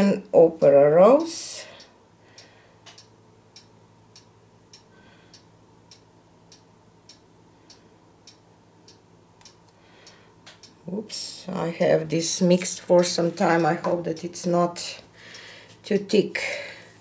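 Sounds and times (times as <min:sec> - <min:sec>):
low steady hum: 0:00.0 - 0:17.0
faint even ticking: 0:01.2 - 0:16.2.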